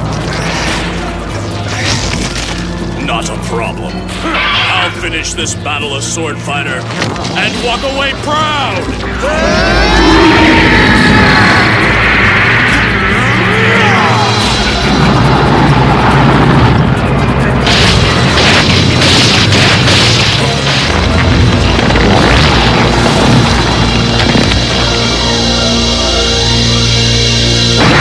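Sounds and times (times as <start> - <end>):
dramatic background music: 0.0 - 28.0
sharp impacts: 14.3 - 25.6
cartoon blasts and crashes: 17.6 - 25.4, 27.7 - 28.0.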